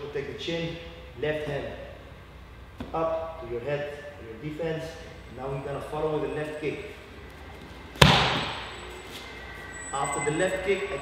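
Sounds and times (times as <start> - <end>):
kick smacking a kick pad: 8.0 - 8.6.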